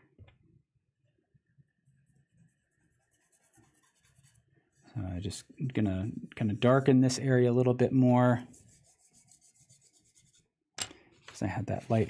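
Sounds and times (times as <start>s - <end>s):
charcoal scrubbing on paper: 2.4s - 4.4s, 8.5s - 10.4s.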